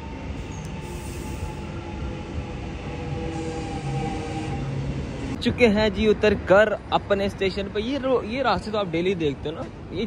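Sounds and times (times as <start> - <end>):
electric train whine: 0.0 - 5.5
low train rumble: 0.0 - 10.0.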